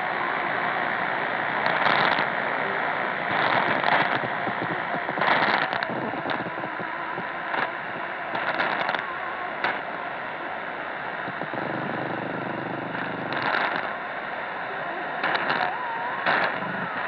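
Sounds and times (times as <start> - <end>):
crackling static bursts: 0.0 - 17.0
radio static hiss: 0.0 - 17.0.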